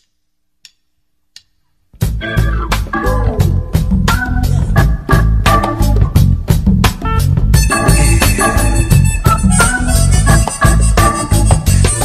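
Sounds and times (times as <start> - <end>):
music: 1.4 - 12.0.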